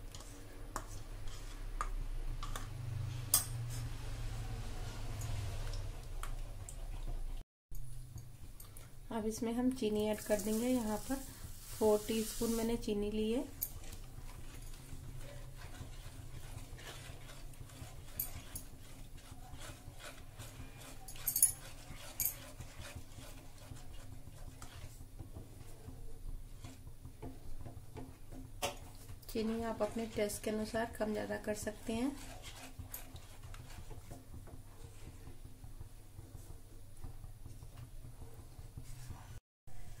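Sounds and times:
spatula scraping and sloshing: 0.0s - 7.4s, 9.8s - 37.2s.

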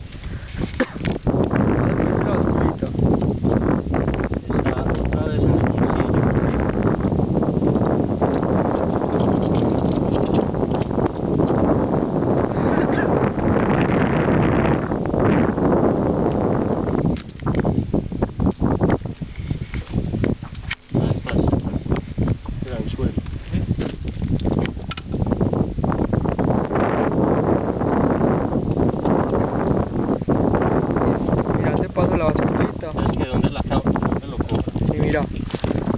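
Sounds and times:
wind buffeting microphone: 0.0s - 35.9s.

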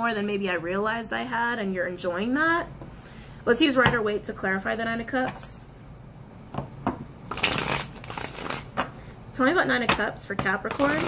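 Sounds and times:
cards being shuffled: 7.3s - 8.8s.

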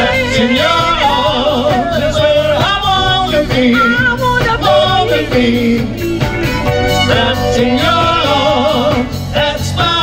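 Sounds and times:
woman singing lead: 0.0s - 9.2s
live band playing soul rock: 0.0s - 10.0s.

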